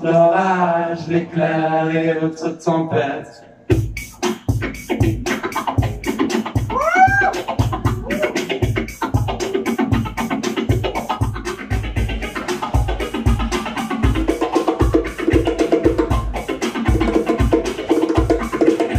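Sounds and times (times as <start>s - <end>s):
bongos: 3.7s - 18.9s
low thumping beat: 3.7s - 18.9s.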